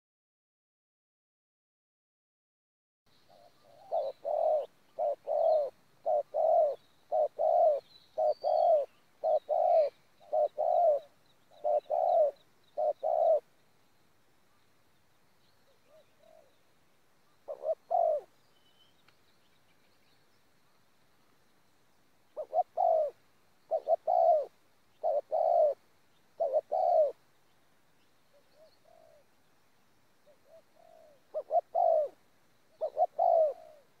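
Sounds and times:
dove cooing: 3.3s - 13.5s, 15.6s - 16.6s, 17.4s - 18.4s, 22.3s - 27.2s, 28.3s - 29.4s, 30.2s - 34.0s.

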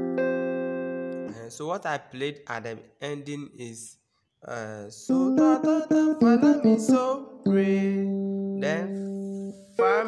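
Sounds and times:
electronic keyboard chord: 0.0s - 1.4s, 5.1s - 10.0s
man speaking: 1.3s - 5.2s, 7.0s - 10.0s.

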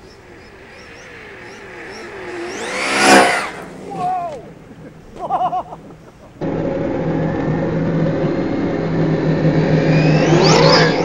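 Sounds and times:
rc truck motor passing by: 0.0s - 4.9s, 6.4s - 11.0s.

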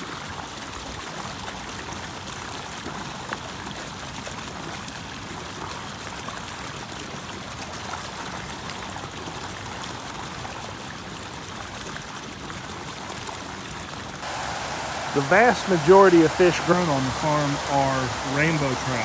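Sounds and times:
water gushing and splashing: 14.2s - 19.0s.

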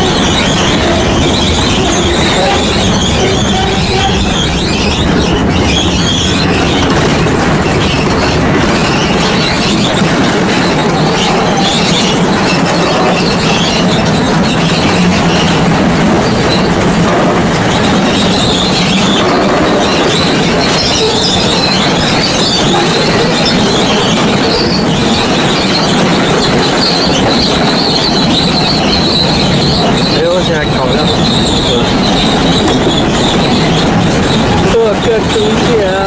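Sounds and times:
high wavering wheel squeal: 0.0s - 36.0s
wheels rumbling on metal rail: 0.0s - 36.0s.

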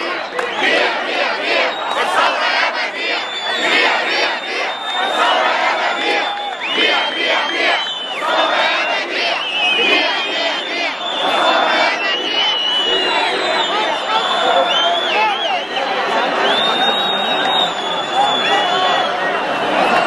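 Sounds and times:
crowd chanting: 0.0s - 20.0s.

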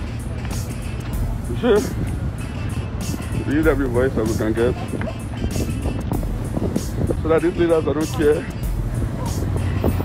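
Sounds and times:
background music: 0.0s - 10.0s
wind buffeting microphone: 0.0s - 10.0s.

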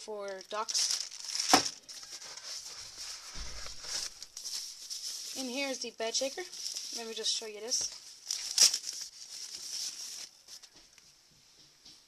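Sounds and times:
packaging rustling: 0.2s - 10.8s.

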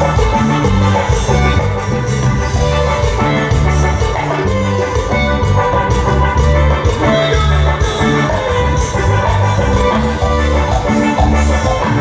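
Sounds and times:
live dance band playing: 0.0s - 12.0s.

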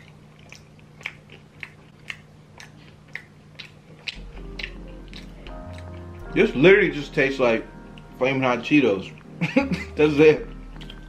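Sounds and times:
person chewing crunchy snack: 0.0s - 6.3s, 10.4s - 11.0s
faint background music: 3.1s - 11.0s.

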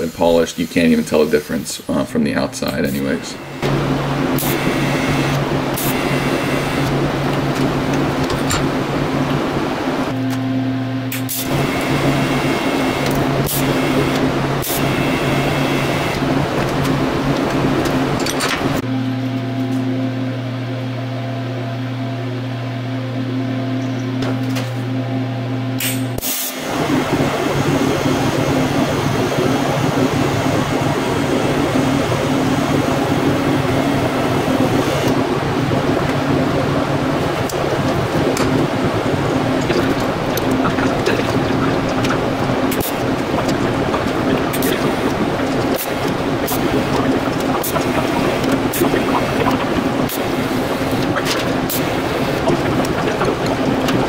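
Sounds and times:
welding arc hissing: 0.0s - 10.2s, 11.1s - 18.8s, 38.8s - 54.0s
welder electrical hum: 0.0s - 54.0s.

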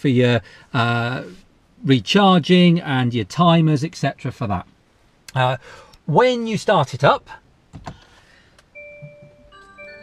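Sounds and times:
car start-up chime melody: 8.7s - 10.0s.

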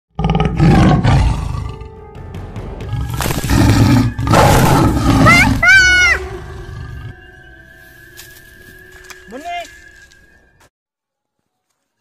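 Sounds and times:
tiger roaring: 0.1s - 1.9s, 2.9s - 7.2s.

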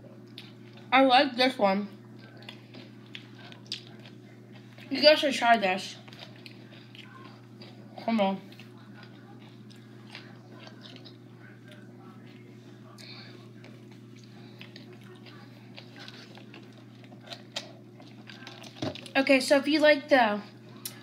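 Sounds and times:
steady low hum: 0.0s - 21.0s
close-up chewing crunches: 2.1s - 5.1s, 5.8s - 19.2s.

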